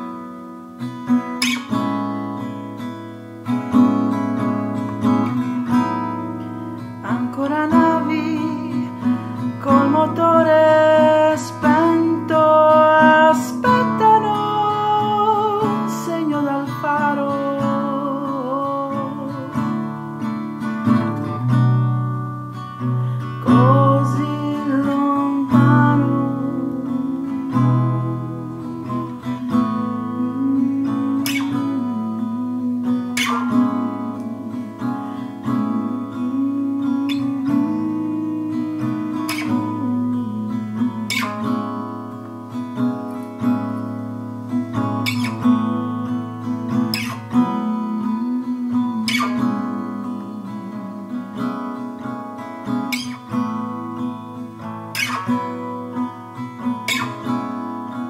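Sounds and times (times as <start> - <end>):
acoustic guitar folk song: 0.0 - 58.0.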